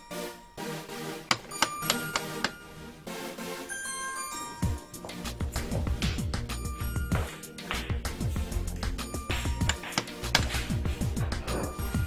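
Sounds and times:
sharp metallic clicks ringing: 1.3 - 2.6.

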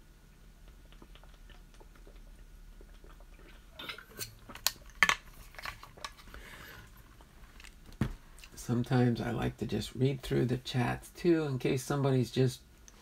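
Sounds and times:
faint room noise: 0.0 - 13.0.

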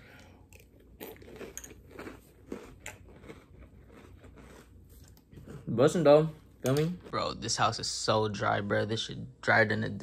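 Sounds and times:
person chewing crunchy cereal: 0.0 - 6.3.

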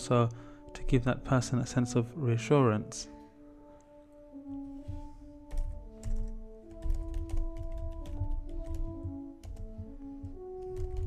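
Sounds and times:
slow sustained background music: 0.0 - 11.0
keyboard typing clicks: 5.5 - 11.0.

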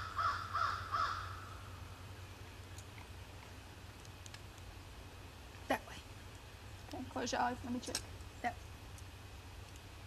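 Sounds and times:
crow cawing: 0.0 - 1.6.

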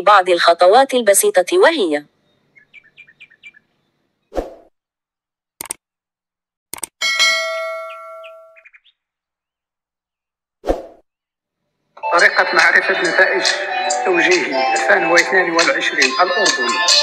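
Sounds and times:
sharp mouse clicks: 5.6 - 5.8, 6.7 - 7.0
bright bell-like ding: 7.0 - 8.6.

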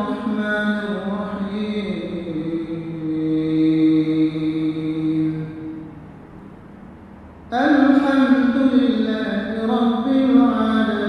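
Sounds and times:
man reciting melodically: 0.0 - 6.0, 7.5 - 11.0.

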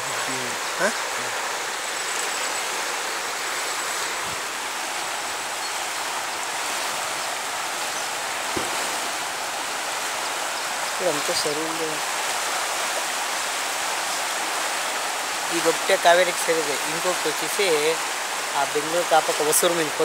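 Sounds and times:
river water rushing: 0.0 - 20.0.

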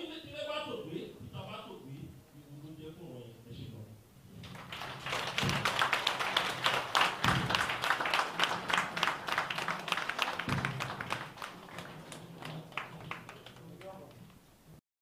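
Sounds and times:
crowd clapping: 4.4 - 14.5.

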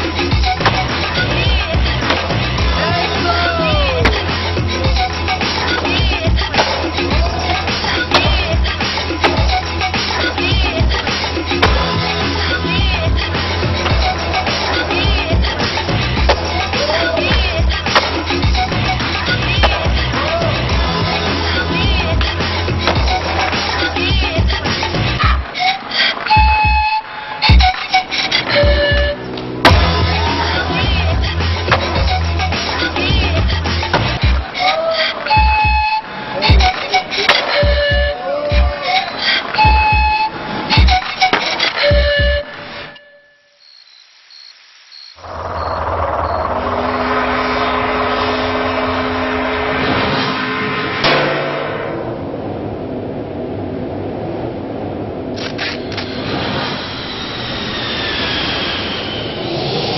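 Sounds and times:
soundtrack music with steady beat: 27.5 - 34.6
aircraft engines rumbling: 45.2 - 51.1, 52.0 - 59.9.

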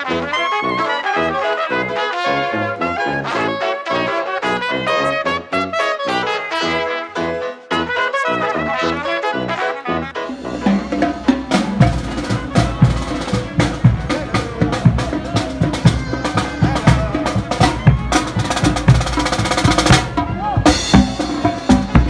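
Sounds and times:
brass: 0.0 - 22.0
marching band playing: 0.0 - 22.0
bass drum strokes: 10.3 - 22.0
snare drum strokes and roll: 10.3 - 22.0.

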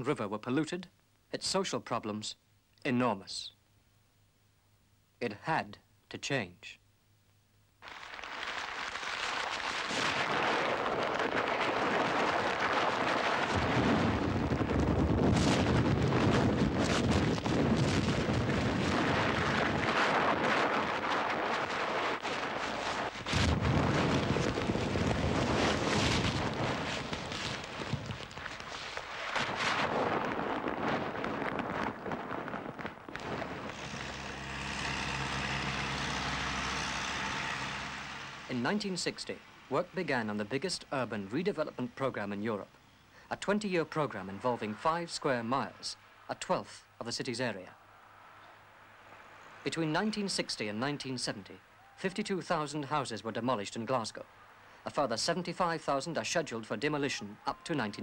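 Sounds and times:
rumbling crash of falling masonry: 7.8 - 34.1
deep rumble of walls collapsing: 7.9 - 34.3
diesel engine running: 33.6 - 38.6.

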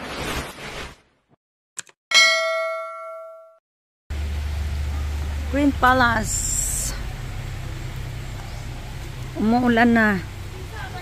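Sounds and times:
bright metallic ding: 2.1 - 3.6.

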